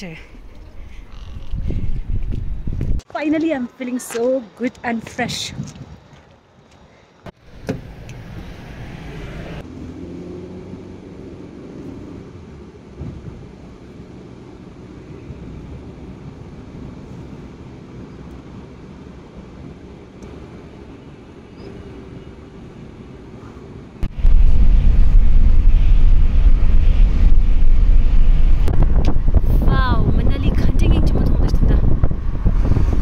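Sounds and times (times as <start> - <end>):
car engine and road noise: 6.1 - 33.0.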